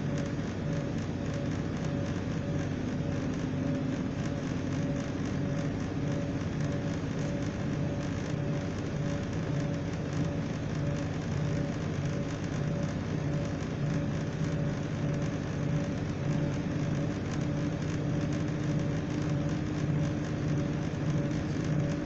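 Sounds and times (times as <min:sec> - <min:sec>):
diesel engine drone: 0:00.0 - 0:22.0.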